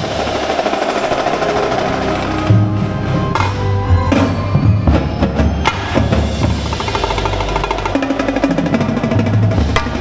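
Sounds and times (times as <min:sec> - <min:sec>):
rapid tenor drumming: 0:00.0 - 0:10.0.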